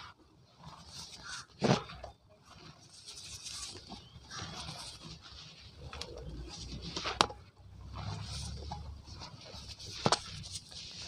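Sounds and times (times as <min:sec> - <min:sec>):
hands crumbling cement powder: 0:00.7 - 0:11.0.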